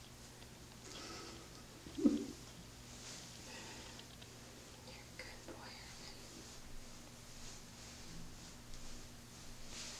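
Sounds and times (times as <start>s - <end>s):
low steady hum: 0.0s - 9.9s
person whispering: 4.8s - 6.3s.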